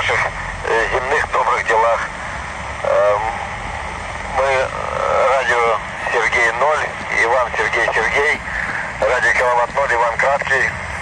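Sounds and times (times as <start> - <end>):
narrow-band radio speech: 0.0 - 2.1, 2.8 - 3.5, 4.3 - 10.8
radio hiss: 0.0 - 11.0.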